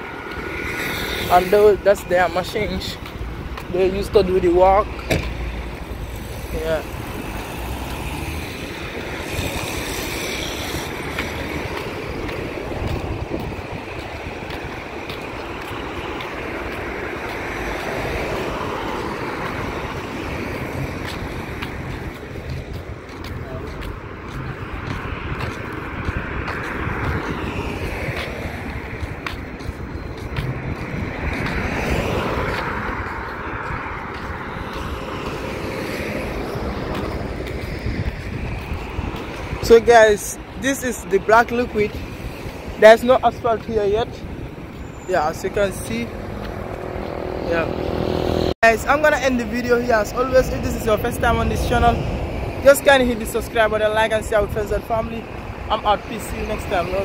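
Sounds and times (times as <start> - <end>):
traffic passing: 0.0 - 57.0
wind rumbling on microphone: 0.0 - 57.0.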